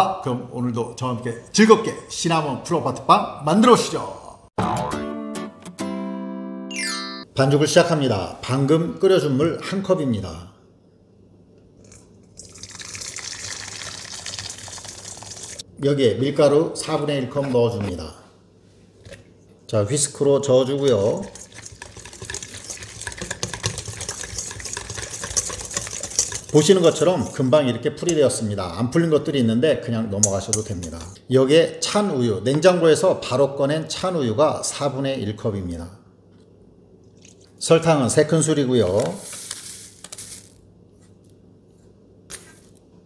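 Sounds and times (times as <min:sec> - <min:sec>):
whisk clicking in metal bowl: 0:20.9 - 0:27.4.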